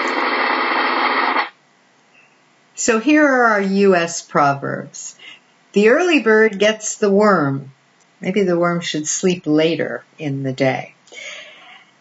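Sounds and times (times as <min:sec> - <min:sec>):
snare drum roll: 0:00.0 - 0:01.5.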